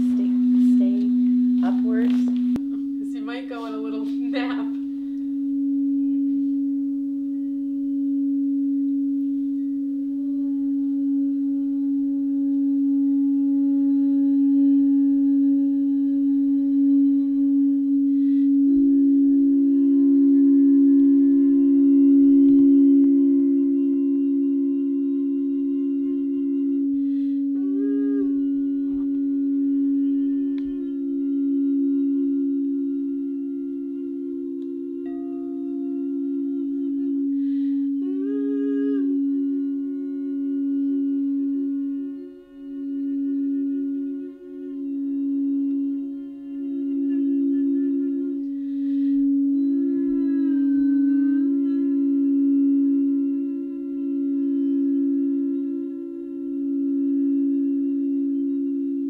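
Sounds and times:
person humming held notes: 0.0s - 59.0s
singing bowls ringing: 0.0s - 59.0s.

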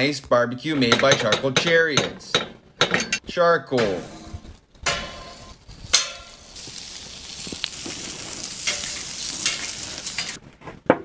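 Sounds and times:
meat sizzling on a grill: 5.0s - 10.4s.

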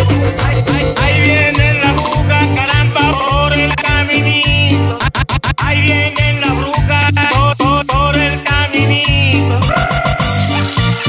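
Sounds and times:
latin dance music: 0.0s - 11.0s.

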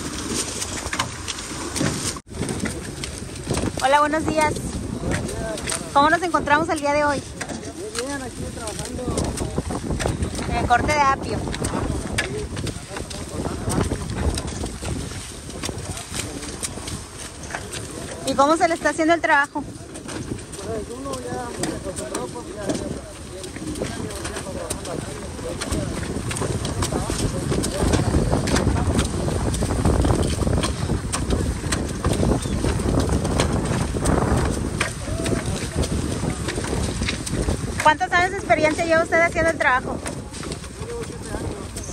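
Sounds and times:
wind on microphone: 0.0s - 41.9s.

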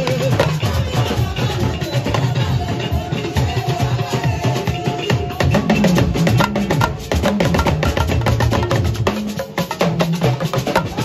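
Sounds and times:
talking drum pitch bends: 5.4s - 11.0s
dense hand drumming: 6.3s - 9.9s.

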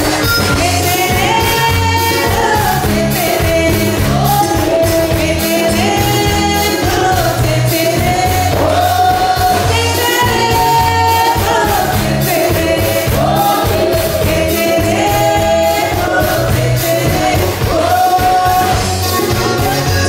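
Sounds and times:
accordion: 0.0s - 20.0s
drum kit beat: 0.0s - 20.0s
woman singing: 0.0s - 20.0s.

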